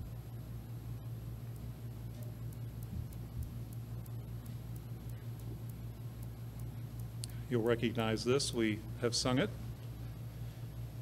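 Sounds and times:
steady low hum: 0:00.0 - 0:11.0
faint high ticking: 0:01.4 - 0:09.0.

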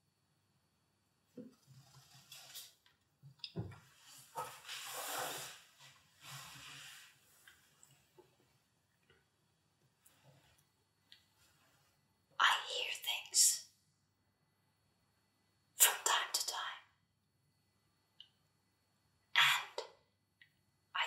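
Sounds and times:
person whispering: 0:12.4 - 0:13.7, 0:15.8 - 0:16.9, 0:19.4 - 0:19.8.

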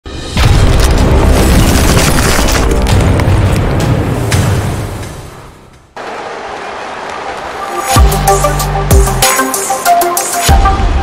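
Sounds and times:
music: 0:00.1 - 0:06.0, 0:07.6 - 0:11.0.

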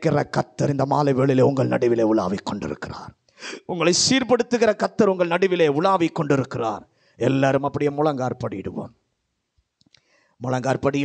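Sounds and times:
man preaching: 0:00.0 - 0:09.0, 0:10.4 - 0:11.0
faint clicks: 0:09.6 - 0:10.1.

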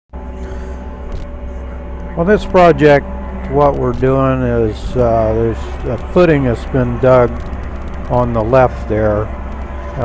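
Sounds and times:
loader engine running: 0:00.2 - 0:10.0.

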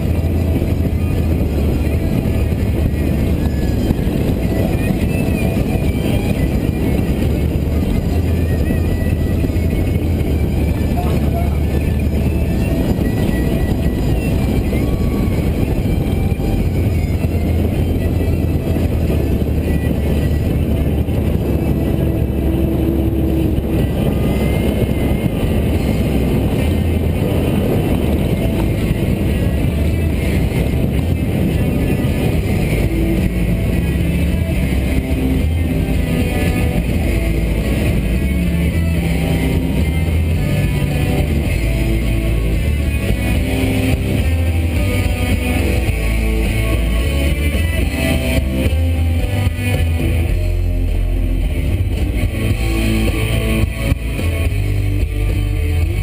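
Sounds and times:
guitar music: 0:00.0 - 0:56.0
motorboat engine running: 0:00.0 - 0:56.0.

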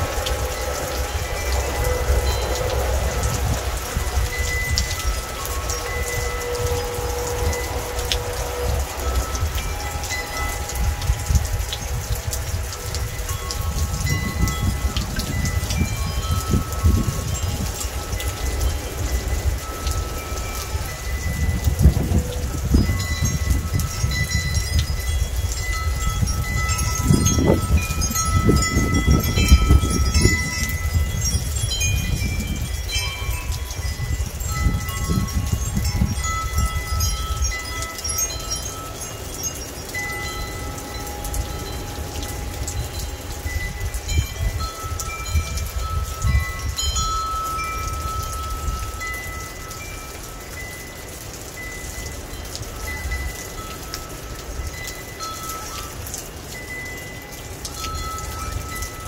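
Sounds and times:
steady rain: 0:00.0 - 0:59.0
wind chimes ringing: 0:00.0 - 0:59.0.

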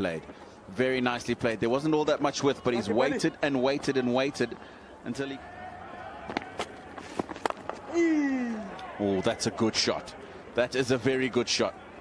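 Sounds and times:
person exclaiming: 0:07.9 - 0:08.8.

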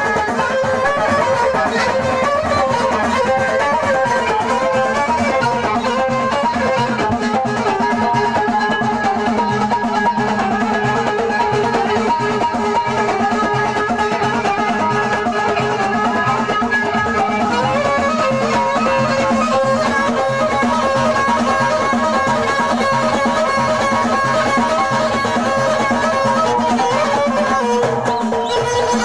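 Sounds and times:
bowed violin melody: 0:00.0 - 0:29.0
hand drum rhythm: 0:00.0 - 0:29.0.

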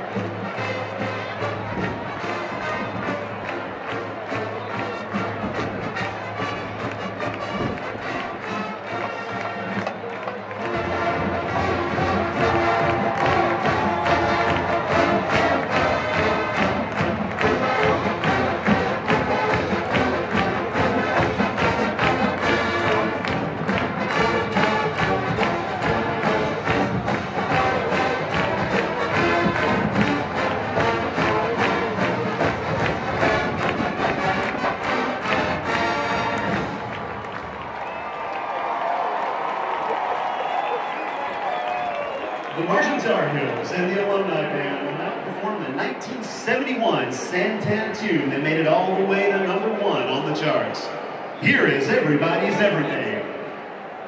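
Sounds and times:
marching band playing: 0:00.0 - 0:40.6
steady drumbeat: 0:09.8 - 0:36.6.

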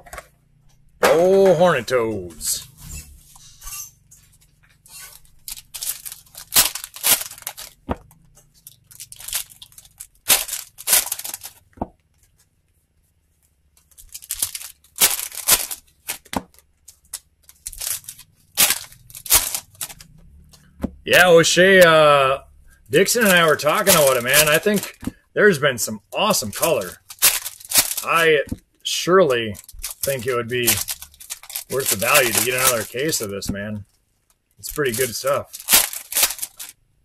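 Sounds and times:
cards rustling: 0:04.2 - 0:12.4, 0:13.5 - 0:21.3, 0:22.1 - 0:33.8, 0:34.6 - 0:36.8.

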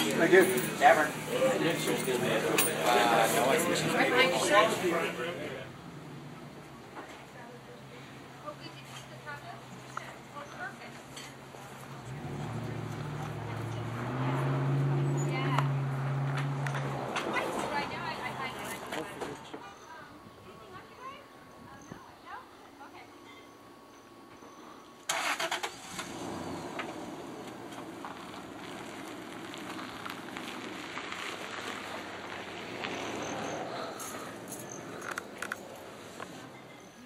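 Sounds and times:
car engine cranking: 0:25.1 - 0:36.7
car engine running: 0:25.8 - 0:36.6.

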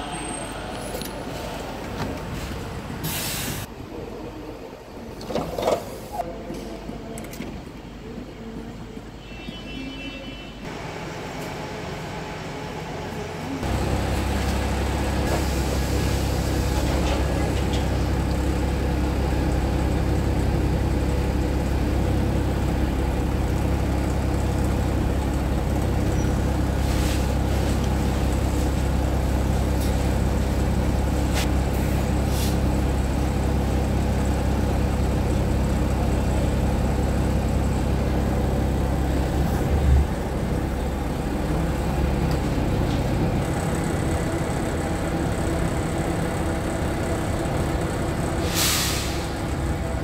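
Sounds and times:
bus diesel engine droning: 0:00.0 - 0:50.0.

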